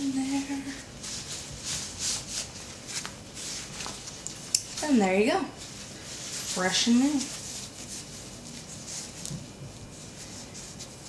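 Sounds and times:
fabric rustling and rubbing: 0:00.0 - 0:11.0.

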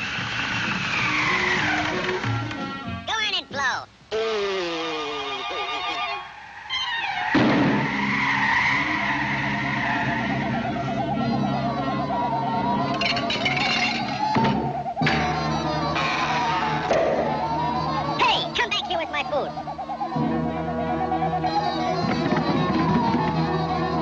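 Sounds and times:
howling blizzard wind: 0:06.1 - 0:12.8.

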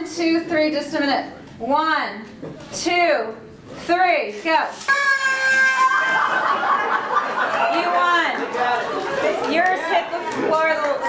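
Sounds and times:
audience laughing and calling out: 0:05.7 - 0:11.0.

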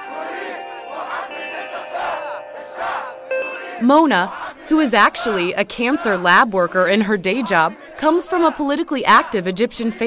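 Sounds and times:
held musical tone: 0:00.0 - 0:05.4
crowd chanting in rhythm: 0:00.0 - 0:10.0.

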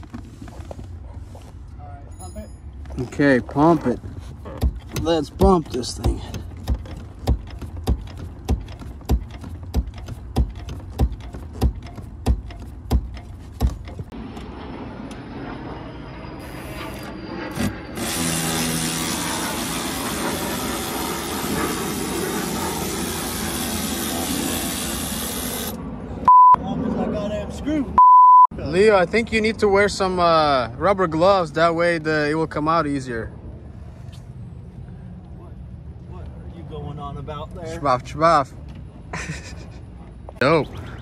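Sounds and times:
clutch pedal knocking: 0:04.4 - 0:14.1
short loud beep: 0:26.3 - 0:26.6, 0:28.0 - 0:28.5.

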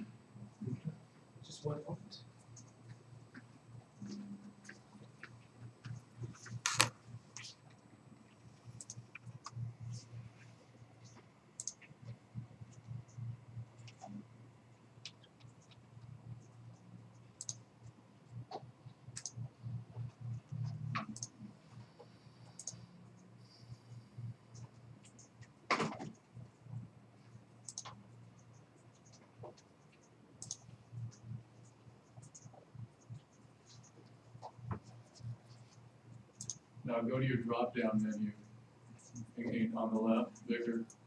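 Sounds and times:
low background hum: 0:00.0 - 0:41.0
computer mouse clicks: 0:02.4 - 0:14.3, 0:15.0 - 0:26.9, 0:27.6 - 0:36.6, 0:38.9 - 0:39.6.

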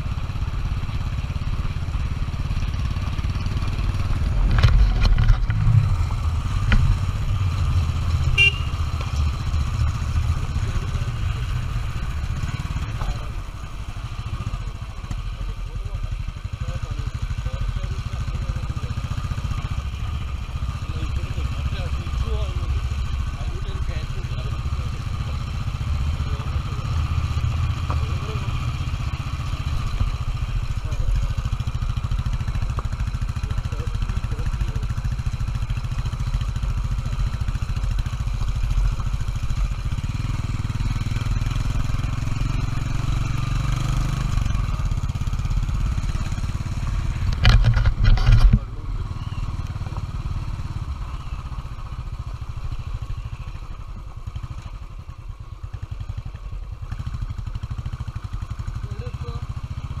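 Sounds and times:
motorcycle engine running: 0:00.0 - 1:00.0.

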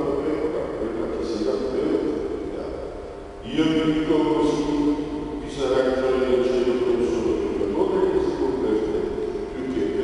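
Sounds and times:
man's voice: 0:00.0 - 0:10.0.

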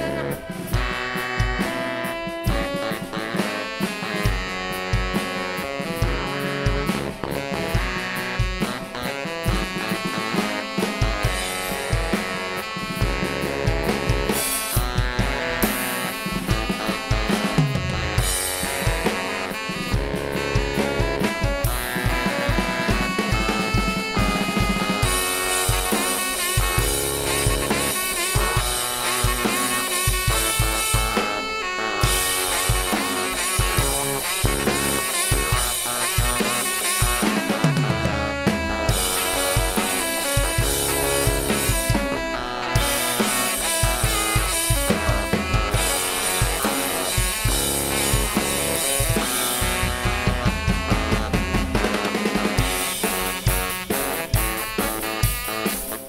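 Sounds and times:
drum kit beat: 0:00.0 - 0:56.0
live band playing: 0:00.0 - 0:56.0.

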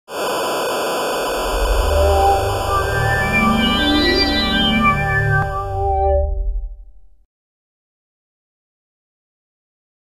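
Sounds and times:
television static hiss: 0:00.1 - 0:03.1
intro jingle: 0:01.3 - 0:07.2
low bass tone: 0:01.3 - 0:07.2.

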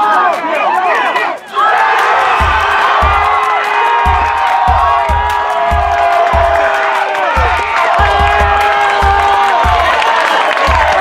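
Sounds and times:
crowd cheering: 0:00.0 - 0:11.0
music with thumping bass beat: 0:01.5 - 0:11.0.

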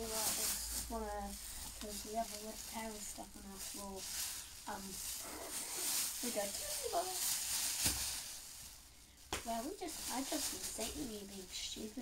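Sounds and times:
plastic bag rustling: 0:00.0 - 0:12.0.

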